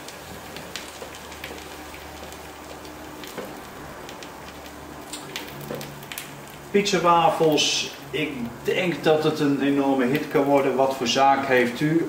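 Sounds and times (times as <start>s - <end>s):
food sizzling in waffle iron: 0.0s - 10.4s.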